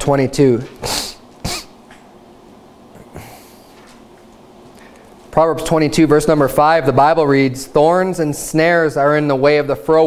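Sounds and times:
man sniffing: 0:00.8 - 0:01.8, 0:03.0 - 0:03.8.

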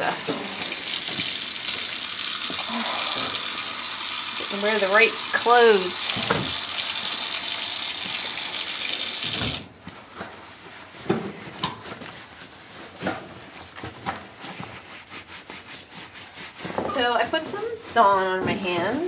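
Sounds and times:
tap water pouring into sink: 0:00.0 - 0:09.7.

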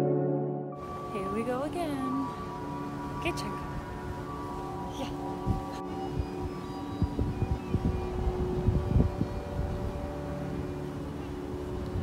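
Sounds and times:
quiet background music: 0:00.0 - 0:12.0
wind buffeting microphone: 0:00.9 - 0:12.0.

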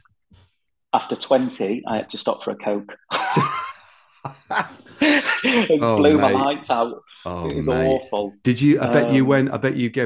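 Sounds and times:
men laughing: 0:03.1 - 0:06.3.

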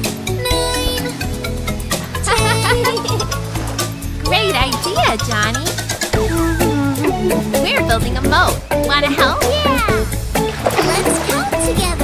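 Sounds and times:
upbeat children's song music: 0:00.0 - 0:12.0
cartoon children's voices: 0:00.4 - 0:01.2, 0:02.2 - 0:03.2, 0:09.2 - 0:10.0
water splash sound effect: 0:10.4 - 0:12.0.

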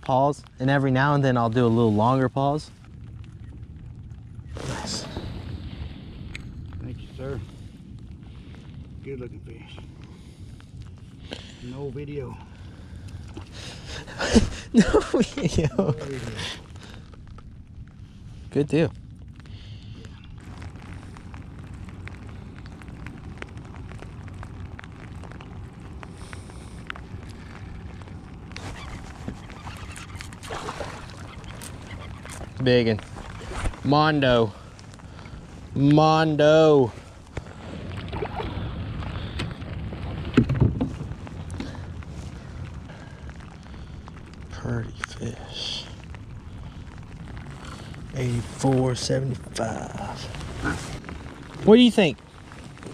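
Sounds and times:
light rain: 0:00.0 - 0:52.9
wind rumbling on microphone: 0:00.0 - 0:52.9
small ticks and clicks: 0:05.5 - 0:14.0, 0:15.0 - 0:52.9
rain jacket sleeves rustling: 0:26.0 - 0:35.9, 0:47.5 - 0:52.9.

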